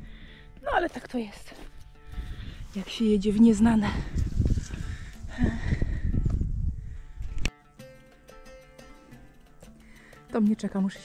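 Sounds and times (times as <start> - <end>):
soft background music: 0.0 - 6.1, 6.8 - 11.0
wind rumbling on microphone: 2.0 - 7.5.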